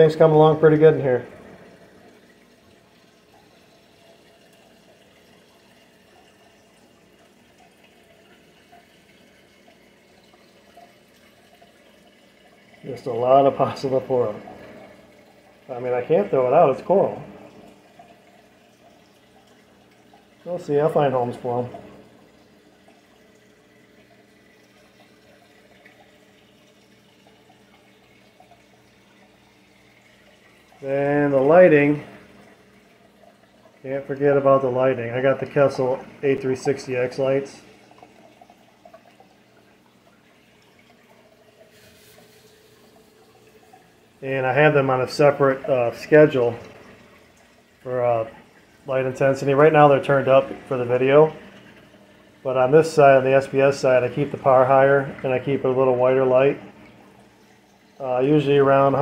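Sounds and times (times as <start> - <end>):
man speaking: 0.0 - 1.3, 15.7 - 17.3, 33.8 - 37.6, 44.2 - 46.6, 47.9 - 51.4, 52.4 - 56.6
faint running water: 0.0 - 59.0
low steady hum: 0.0 - 59.0.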